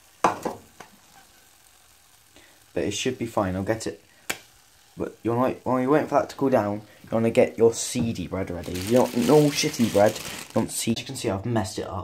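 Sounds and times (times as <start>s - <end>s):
egg sizzling in pan: 0.0s - 11.0s.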